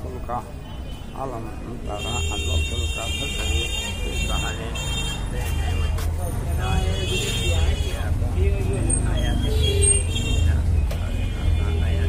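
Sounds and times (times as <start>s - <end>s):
passing traffic: 0.0s - 12.0s
people's voices: 0.0s - 12.0s.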